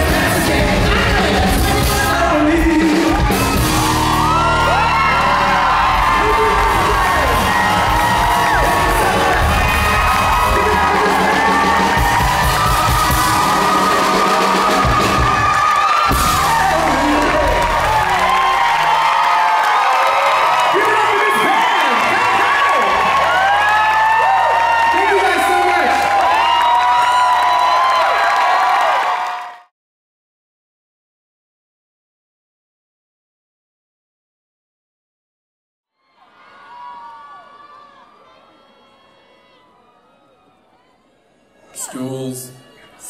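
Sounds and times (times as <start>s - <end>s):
audience screaming and whooping: 0.0s - 29.7s, 36.0s - 40.4s.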